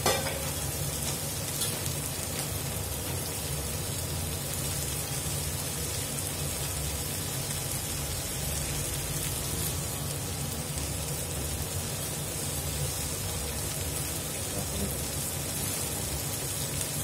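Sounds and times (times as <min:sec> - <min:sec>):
vegetables sizzling in oil: 0:00.0 - 0:17.0.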